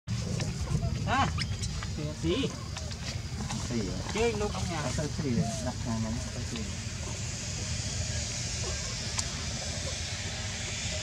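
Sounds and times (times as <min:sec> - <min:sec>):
steady low rumble: 0:00.1 - 0:11.0
monkey call: 0:00.3 - 0:03.6, 0:04.5 - 0:11.0.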